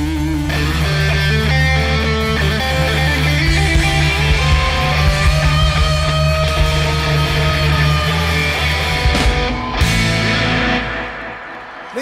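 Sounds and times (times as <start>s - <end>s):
drums: 0.0s - 12.0s
electric guitar: 0.0s - 12.0s
live rock band playing: 0.0s - 12.0s.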